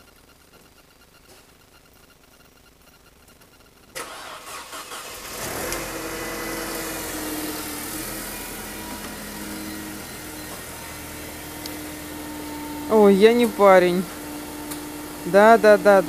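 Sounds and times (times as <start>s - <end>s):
car engine idling: 3.9s - 16.0s
car starter cranking: 3.9s - 16.0s.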